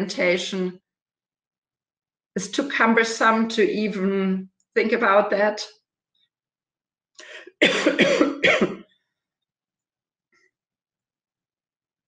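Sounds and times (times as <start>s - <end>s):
faint breath: 7.2s - 7.5s.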